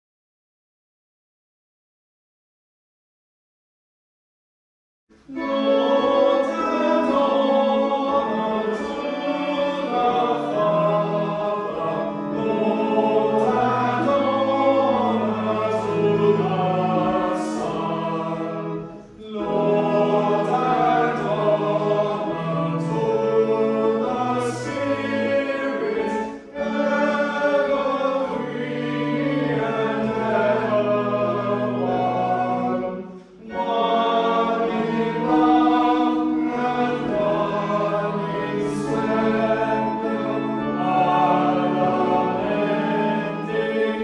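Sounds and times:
congregation singing a hymn: 0:05.2 - 0:44.0.

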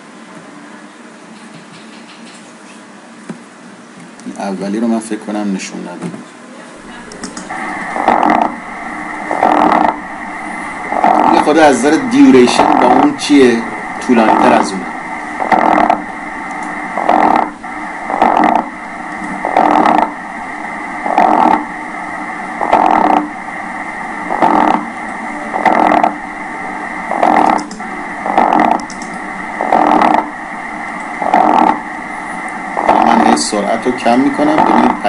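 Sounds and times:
electrical hum and whine: 0:00.0 - 0:35.0
bursts of crackling discharges: 0:06.8 - 0:35.0.

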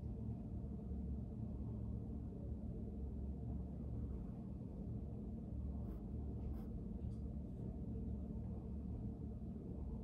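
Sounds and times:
low room hum: 0:00.0 - 0:10.0
pencil scratching on paper: 0:05.8 - 0:06.8.

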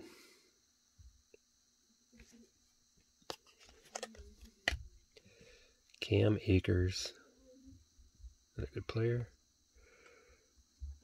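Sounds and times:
cards clicking: 0:03.3 - 0:04.8.

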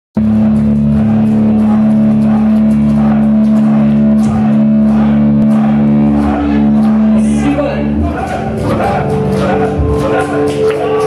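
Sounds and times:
metal band playing loud: 0:00.2 - 0:11.0.

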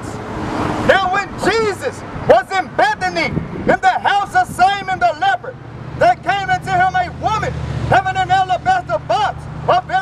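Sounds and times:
street traffic rumble: 0:00.0 - 0:10.0
man reading through megaphone: 0:00.9 - 0:10.0.

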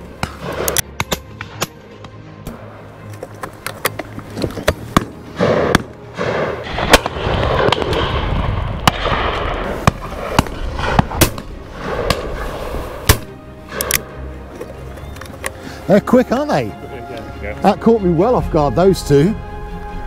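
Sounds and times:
shotgun shots: 0:04.7 - 0:14.1.

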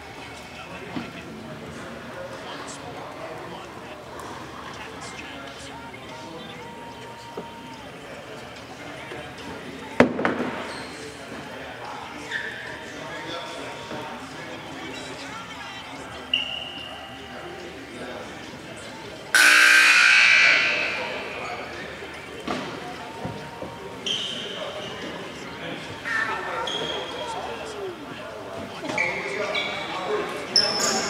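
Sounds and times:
background voices in a hall: 0:00.0 - 0:31.0
scoreboard horn: 0:19.3 - 0:21.7.

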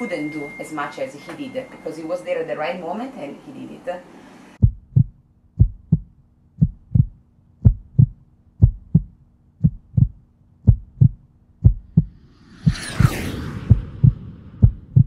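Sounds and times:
faint steady hum: 0:00.0 - 0:11.8
low double thumps: 0:04.6 - 0:12.9, 0:13.5 - 0:15.0.

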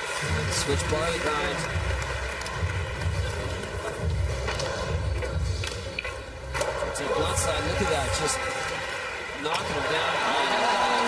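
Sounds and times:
background music: 0:00.0 - 0:11.0
crowd noise: 0:00.0 - 0:11.0.

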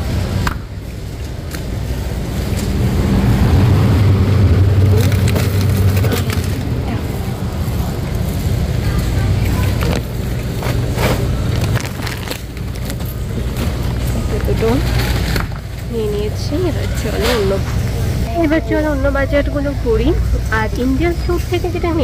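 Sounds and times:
shopping cart wheels rumbling: 0:00.0 - 0:22.0
cart basket rattling: 0:04.6 - 0:18.0.

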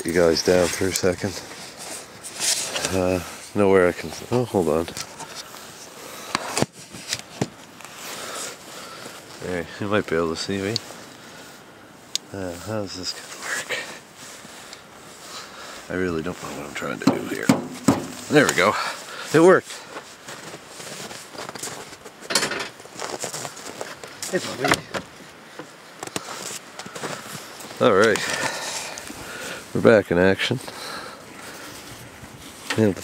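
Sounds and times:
person rustling and scuffing: 0:00.0 - 0:09.7, 0:10.5 - 0:30.8, 0:31.4 - 0:33.0.

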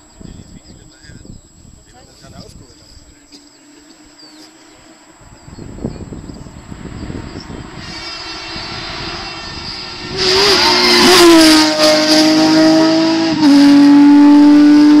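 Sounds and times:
rally car engine passing at speed: 0:06.5 - 0:15.0.

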